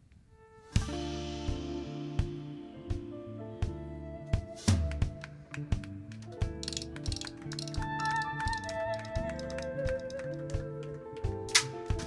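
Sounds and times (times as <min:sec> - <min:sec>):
drum kit strikes: 0:00.8 - 0:03.8
steady bass line: 0:00.8 - 0:12.0.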